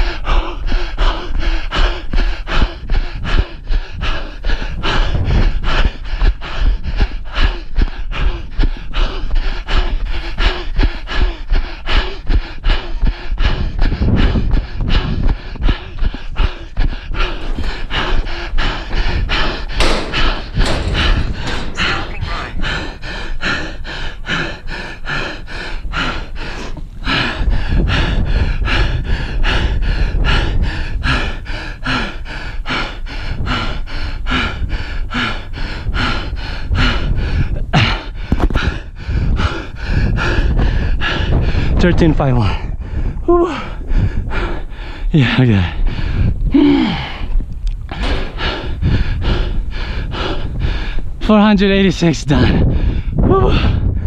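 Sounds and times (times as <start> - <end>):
runner panting hard: 0.0 - 54.0
wind rumble on microphone: 0.0 - 54.0.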